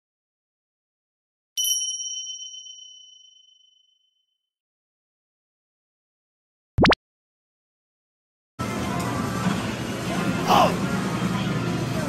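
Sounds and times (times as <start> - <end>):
bell-like ding: 1.6 - 4.0.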